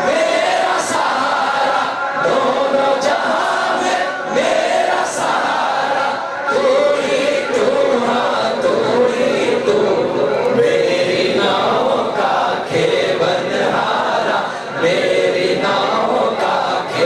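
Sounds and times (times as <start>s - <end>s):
group of voices singing: 0.0s - 17.0s.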